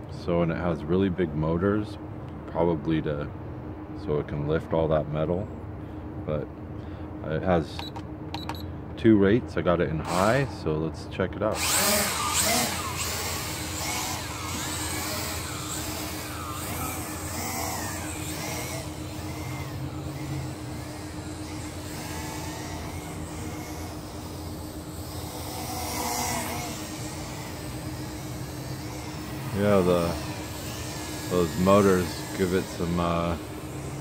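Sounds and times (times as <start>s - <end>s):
quadcopter propellers buzzing: 10.0s - 10.8s, 11.4s - 34.0s.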